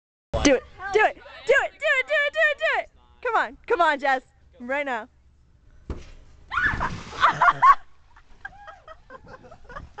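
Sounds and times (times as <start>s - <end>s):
person splashing into pool: 6.6s - 7.8s.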